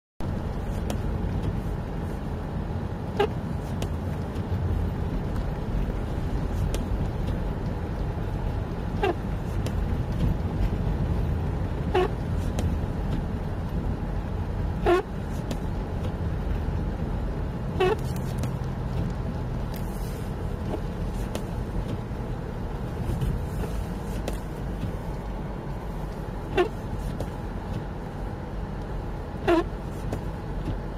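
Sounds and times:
car engine and tyres on snow: 0:00.2 - 0:30.9
windscreen wipers squeaking: 0:00.2 - 0:30.9.

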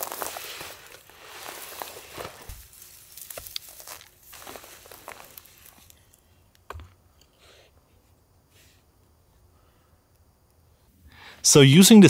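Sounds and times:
footsteps in grass: 0:00.0 - 0:06.0
rustling of ferns: 0:00.0 - 0:06.2.

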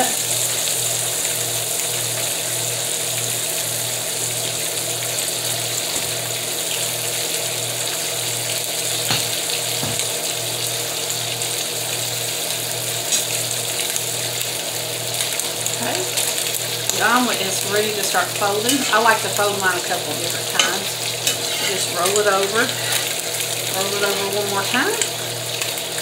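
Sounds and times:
food sizzling on a griddle: 0:00.0 - 0:26.0.

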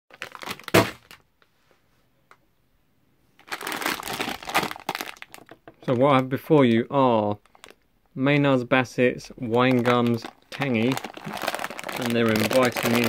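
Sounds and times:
plastic bag crinkling: 0:00.1 - 0:01.2, 0:03.4 - 0:06.2, 0:07.3 - 0:07.8, 0:09.4 - 0:13.0.

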